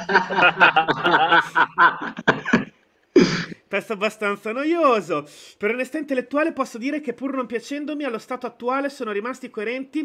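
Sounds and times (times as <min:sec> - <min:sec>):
men laughing: 0:00.0 - 0:02.7.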